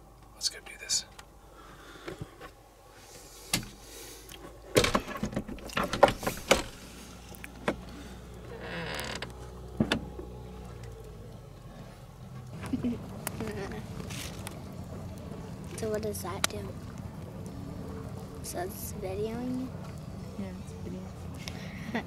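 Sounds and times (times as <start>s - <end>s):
handling clicks and creaks: 3.5s - 18.3s.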